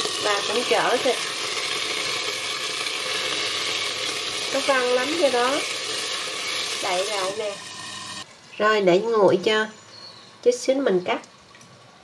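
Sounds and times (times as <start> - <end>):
beef sizzling in a covered wok: 0.0 - 8.8.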